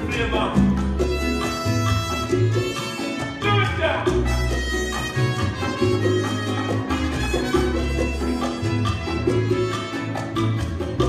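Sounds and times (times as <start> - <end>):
instrumental latin dance music: 0.0 - 11.0.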